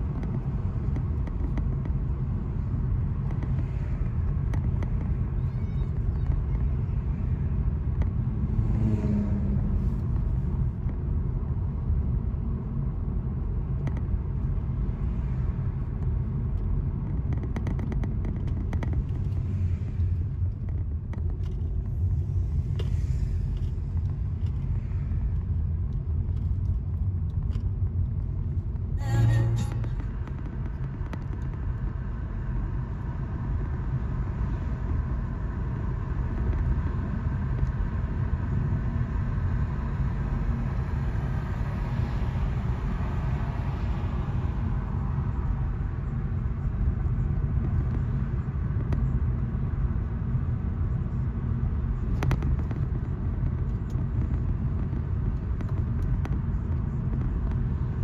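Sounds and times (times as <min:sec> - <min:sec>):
road and tyre noise in car: 0:00.0 - 0:58.0.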